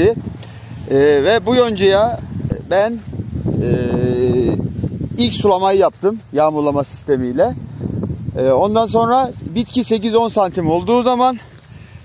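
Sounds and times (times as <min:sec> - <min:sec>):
man's drawn-out hesitation sound: 0:00.0 - 0:11.6.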